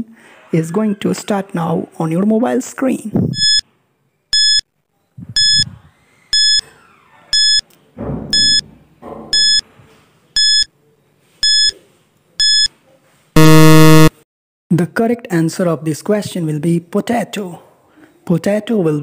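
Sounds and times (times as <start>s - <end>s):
short high-pitched beeps: 3.4s - 3.6s, 4.4s - 4.6s, 5.4s - 5.7s, 6.4s - 6.6s, 7.4s - 7.6s, 8.4s - 8.6s, 9.4s - 9.6s, 10.4s - 10.7s, 11.4s - 11.7s, 12.4s - 12.7s, 13.4s - 14.1s.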